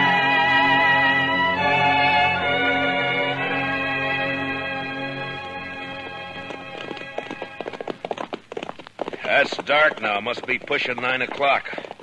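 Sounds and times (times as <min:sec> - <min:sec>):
music cue: 0:00.0 - 0:07.7
horse hoofbeats: 0:00.0 - 0:12.0.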